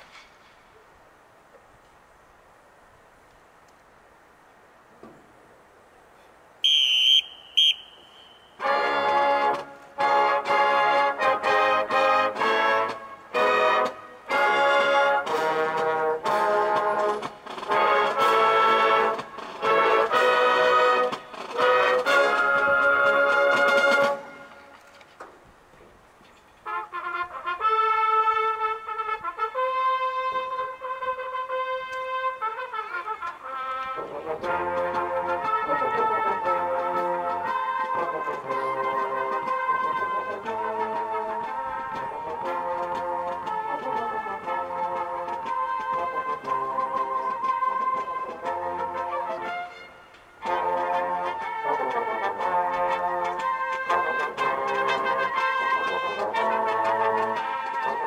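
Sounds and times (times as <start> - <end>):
shrill whistle blasts: 6.6 - 8.7
marching band brass chords: 6.6 - 25.0, 26.6 - 58.0.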